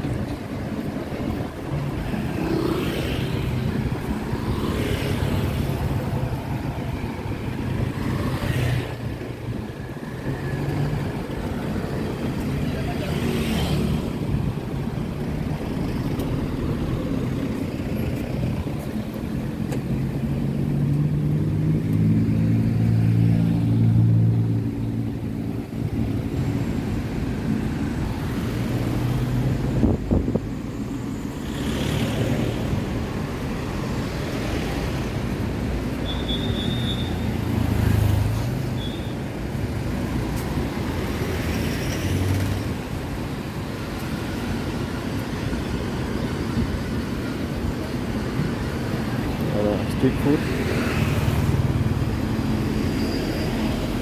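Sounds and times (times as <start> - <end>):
traffic driving past: 0.0 - 54.0.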